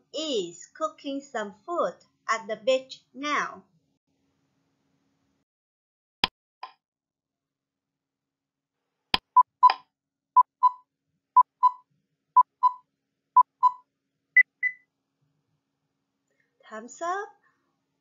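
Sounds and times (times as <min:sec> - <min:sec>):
short electronic beeps: 0:10.4 - 0:10.8, 0:11.4 - 0:11.8, 0:12.4 - 0:12.8, 0:13.4 - 0:13.8, 0:14.4 - 0:14.8.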